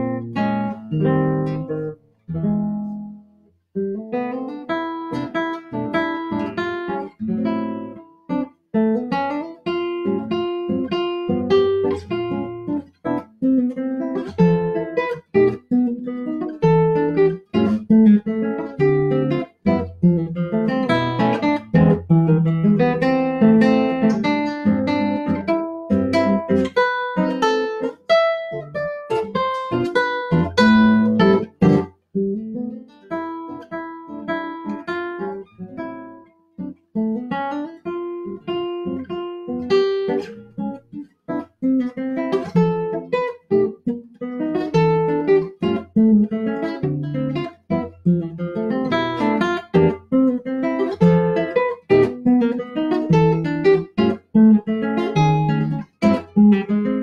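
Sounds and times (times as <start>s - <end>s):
classical guitar playing: 0.0s - 57.0s.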